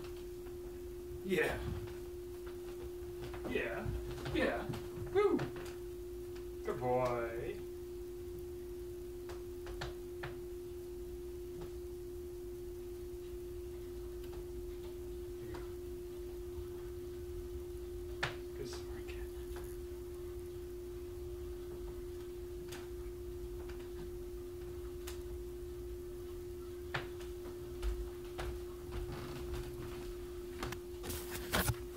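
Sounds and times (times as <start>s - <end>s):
steady low hum: 0.0s - 31.9s
faint clicks and taps: 9.2s - 10.4s, 21.6s - 25.3s.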